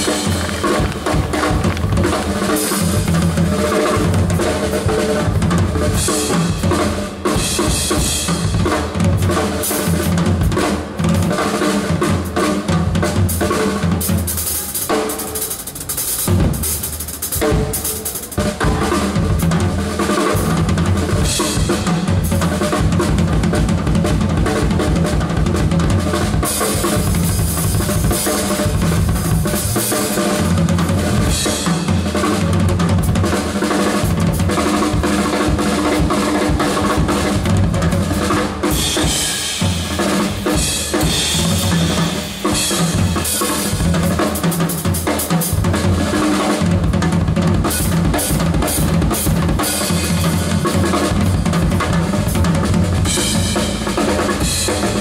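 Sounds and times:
drum kit jazz pattern: 0:00.0 - 0:55.0.

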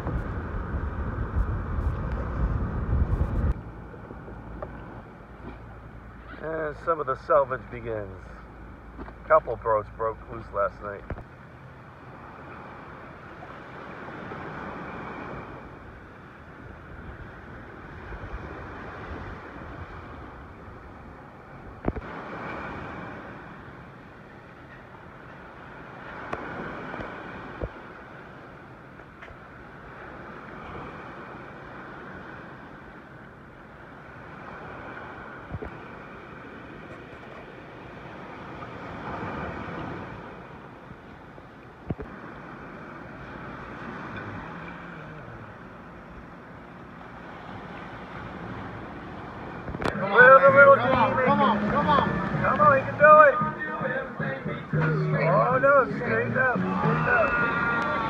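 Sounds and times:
wind on microphone: 0:00.0 - 0:06.4, 0:13.3 - 0:23.5
surf breaking on beach: 0:00.0 - 0:08.5, 0:12.0 - 0:58.0.

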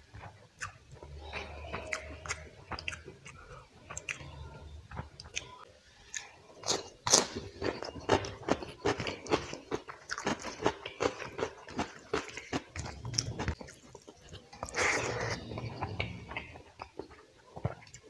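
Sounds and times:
chewing with mouth clicks: 0:00.0 - 0:18.0.

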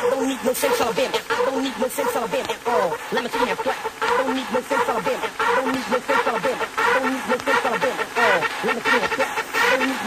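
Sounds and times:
chopped voice-like sample: 0:00.0 - 0:10.0
electronic dance music: 0:00.0 - 0:10.0.

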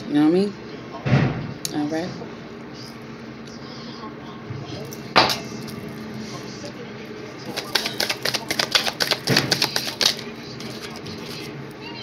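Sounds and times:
cards flicking and slapping: 0:07.4 - 0:11.0
cards snapping: 0:07.5 - 0:10.9.

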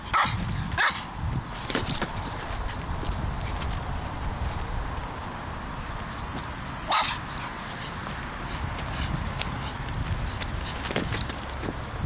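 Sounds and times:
dog barking: 0:00.1 - 0:01.0, 0:06.9 - 0:07.2.

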